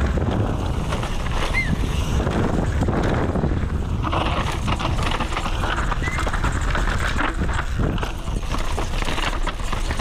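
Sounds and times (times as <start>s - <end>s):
mountain bike rattling over rocks: 0.0s - 10.0s
wind on microphone: 0.0s - 10.0s.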